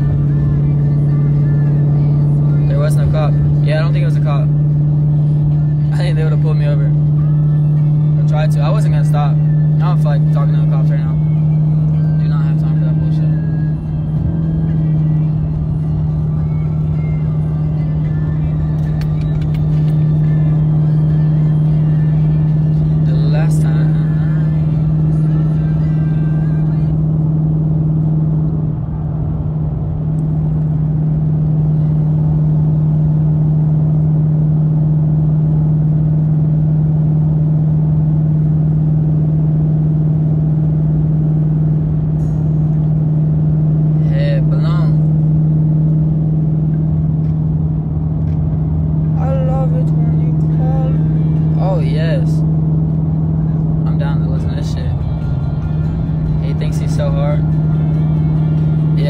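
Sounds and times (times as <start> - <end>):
car engine and road noise: 0.0 - 59.0
constant low hum: 0.0 - 59.0.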